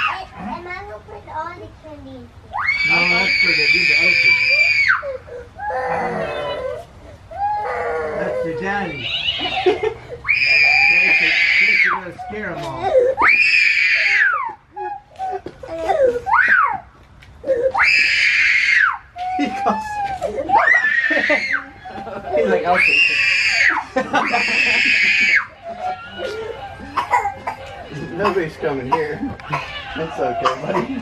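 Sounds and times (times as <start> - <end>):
high-pitched screams: 2.5 - 6.8, 7.4 - 14.6, 17.7 - 28.2
people talking: 8.1 - 9.9, 19.4 - 23.3, 25.7 - 31.0.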